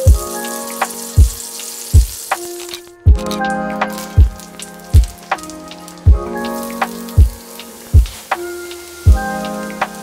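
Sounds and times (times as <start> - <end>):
butter sizzling in a skillet: 0.0 - 10.0
music with deep drum beat: 0.0 - 10.0.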